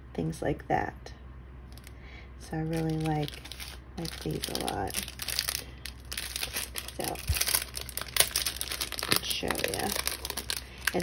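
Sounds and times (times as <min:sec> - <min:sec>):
plastic packet crinkling: 0:02.7 - 0:11.0.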